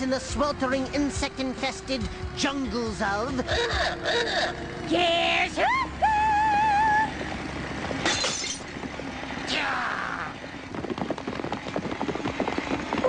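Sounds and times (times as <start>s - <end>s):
clattering breaking clicks: 8.0s - 8.7s.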